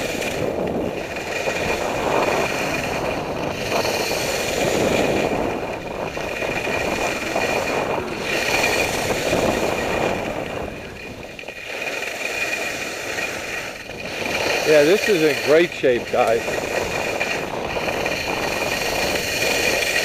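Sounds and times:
skis carving through snow: 0.0 - 20.0
wind rushing over helmet: 0.0 - 20.0.

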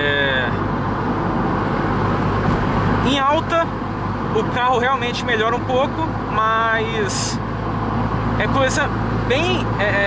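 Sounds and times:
car engine hum: 0.0 - 10.0
road noise: 0.0 - 10.0.

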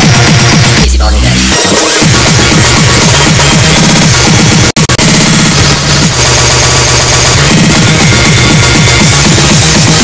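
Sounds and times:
downward-sliding bass tones: 0.0 - 10.0
electronic dance music: 0.0 - 10.0.

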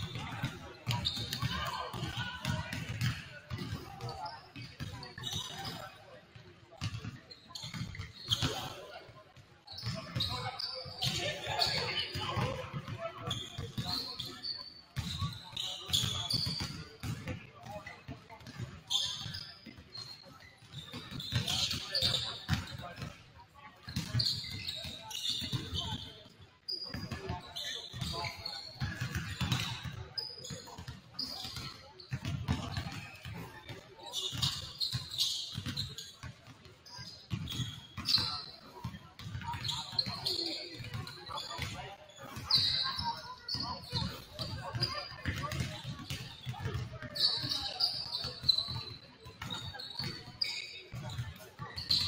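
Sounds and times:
players' voices: 0.0 - 52.0
sneakers squeaking: 0.0 - 52.0.

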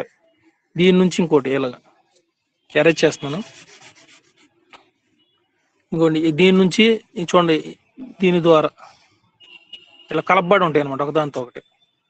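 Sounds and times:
person speaking: 2.8 - 4.3, 5.9 - 9.0
scrape across paper: 3.1 - 4.5.

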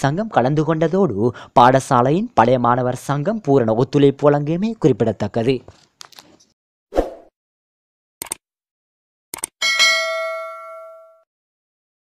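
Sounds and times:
bright bell ding: 9.6 - 11.3.

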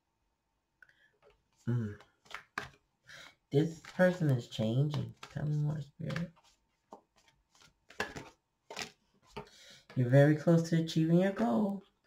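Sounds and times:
cards snapping and sliding: 2.2 - 2.8, 5.0 - 9.5.

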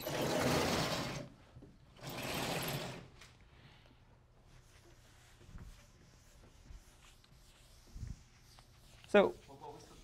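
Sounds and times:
eraser wiping blackboard: 4.6 - 10.0.

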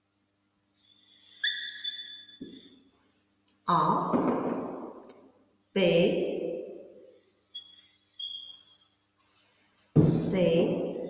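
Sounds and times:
marker squeaking on whiteboard: 0.8 - 2.8, 7.5 - 9.0
marker tip scratch: 7.6 - 8.8.

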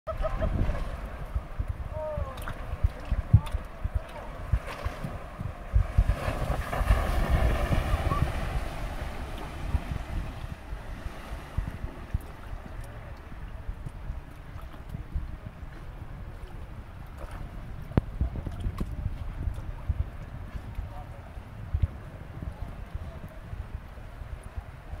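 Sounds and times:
fast-flowing river: 0.1 - 25.0
wind buffeting microphone: 0.1 - 25.0.

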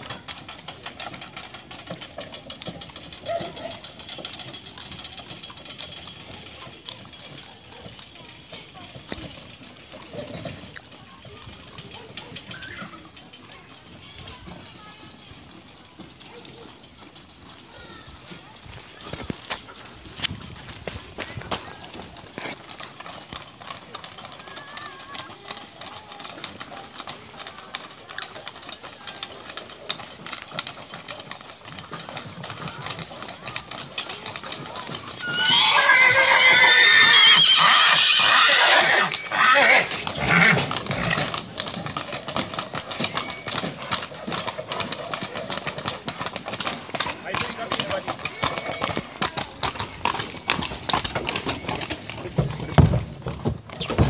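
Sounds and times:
horse hooves on concrete: 0.0 - 54.0
horse whinnying: 35.0 - 43.6, 48.1 - 53.1.

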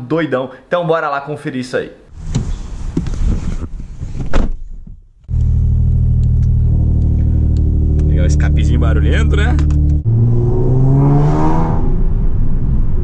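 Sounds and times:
car engine idling: 5.3 - 10.1.

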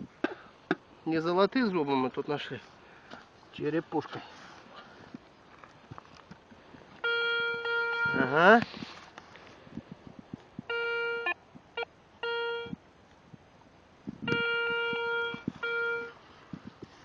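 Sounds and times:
coil tapping and rustling grass: 0.0 - 10.7, 13.0 - 15.6, 16.2 - 17.0
metal detector beeping: 7.0 - 8.5, 10.7 - 12.8, 14.3 - 16.2.

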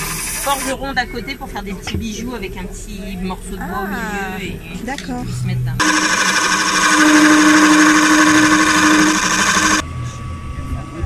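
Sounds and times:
wood lathe gouge cutting hiss: 0.0 - 0.7, 5.8 - 9.8
lathe low tone: 5.6 - 11.0.

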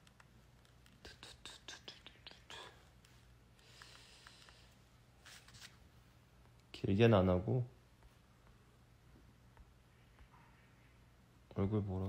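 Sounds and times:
man whispering: 1.0 - 3.0.

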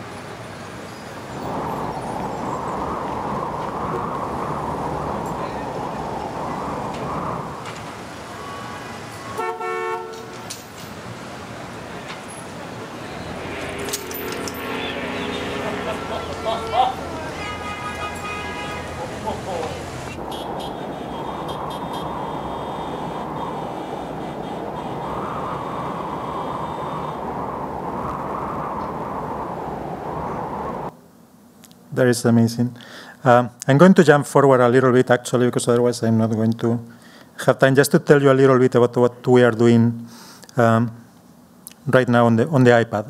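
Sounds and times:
low rumbling rush of noise: 0.0 - 31.0
city traffic noise: 0.0 - 31.9
car horn toot: 8.3 - 10.7, 12.2 - 25.1.

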